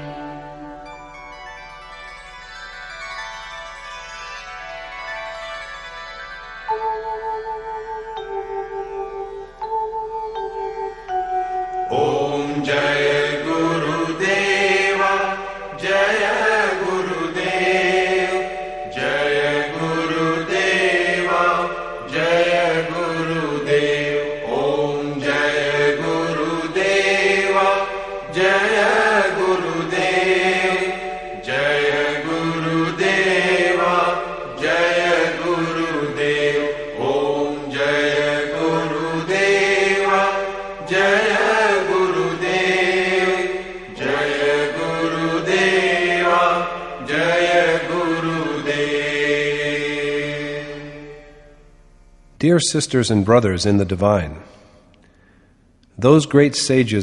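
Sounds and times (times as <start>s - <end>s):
person chanting melodically: 9.2s - 51.2s.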